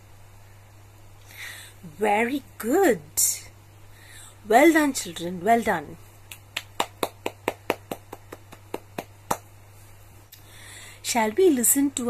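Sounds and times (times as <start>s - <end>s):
person clapping: 6.3s - 9.5s.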